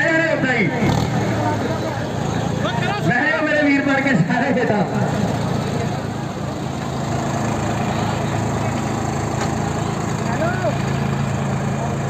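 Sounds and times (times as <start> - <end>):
tractor engines running: 0.0 - 12.0.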